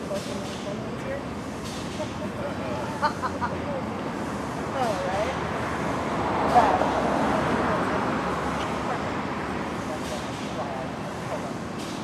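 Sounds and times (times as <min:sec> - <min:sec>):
vehicle passing on road: 0:03.7 - 0:11.2.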